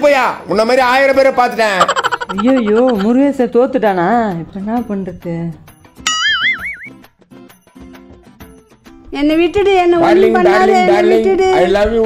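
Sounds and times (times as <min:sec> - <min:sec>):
light rhythmic background music: 0:01.8 - 0:12.0
cartoon boing sound effect: 0:06.1 - 0:06.9.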